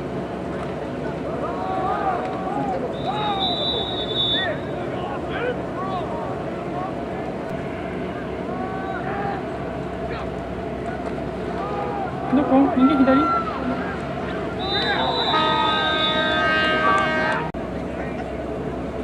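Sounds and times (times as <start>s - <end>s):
low background noise: 0.0s - 19.0s
distant voices shouting: 1.1s - 17.5s.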